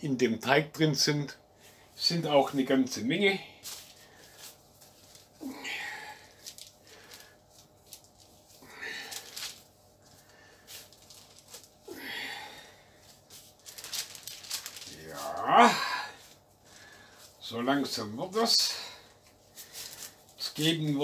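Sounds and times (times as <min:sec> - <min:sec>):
man breathing: 0:03.4 - 0:04.6, 0:05.4 - 0:07.7, 0:08.5 - 0:14.1, 0:15.6 - 0:17.4, 0:18.6 - 0:20.4
dough rustling on paper: 0:03.4 - 0:21.0.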